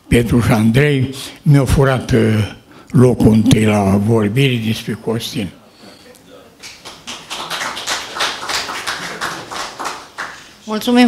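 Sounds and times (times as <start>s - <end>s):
audience applauding: 6.6s - 10.6s.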